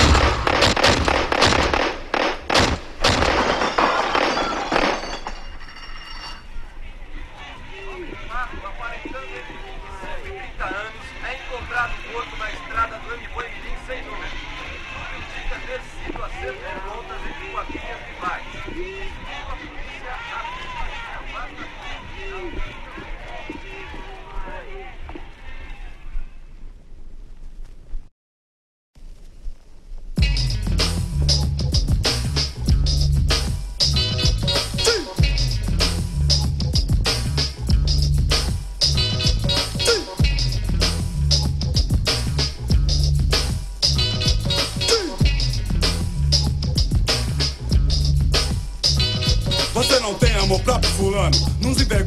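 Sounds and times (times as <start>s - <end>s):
gunshots with echo: 0.0s - 5.2s
background commotion: 0.0s - 27.0s, 29.6s - 52.0s
voices calling out: 6.4s - 26.2s, 44.0s - 45.6s, 49.3s - 52.0s.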